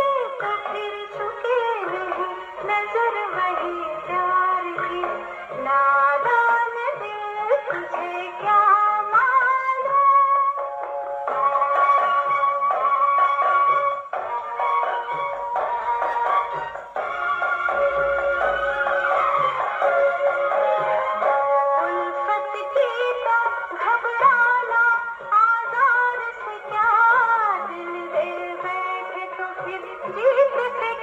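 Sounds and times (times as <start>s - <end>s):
woman singing: 0.0s - 10.6s, 21.5s - 31.0s
instrumental accompaniment: 0.0s - 31.0s
orchestrated film song on gramophone: 0.0s - 31.0s.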